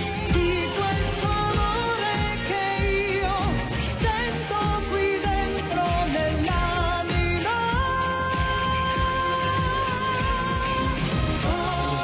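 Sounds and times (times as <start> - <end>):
band playing: 0.0 - 12.0
drum and bass beat: 0.0 - 12.0
woman singing into a microphone: 0.0 - 12.0.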